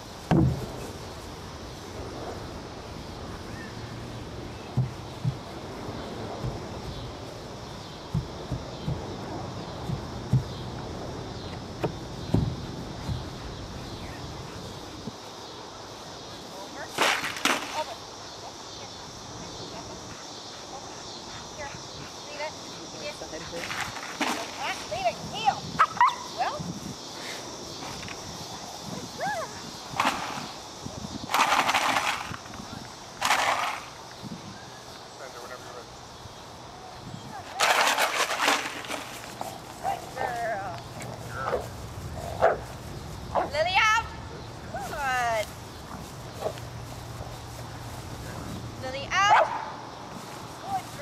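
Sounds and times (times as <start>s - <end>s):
outdoor background noise: 0.0s - 51.0s
soft low thumps: 4.1s - 15.1s
dog barking: 42.4s - 42.6s, 49.3s - 49.7s.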